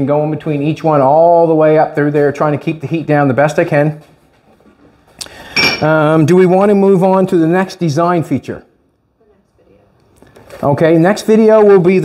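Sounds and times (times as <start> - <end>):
metal tools clinking: 5.6 - 5.9.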